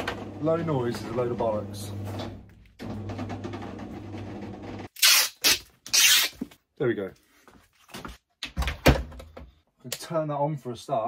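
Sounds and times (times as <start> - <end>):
parcel tape pulled off dispenser: 5.0 - 6.4.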